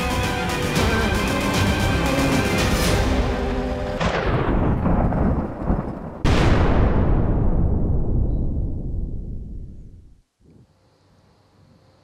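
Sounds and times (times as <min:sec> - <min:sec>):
deep booming impacts: 0:03.0 - 0:10.2.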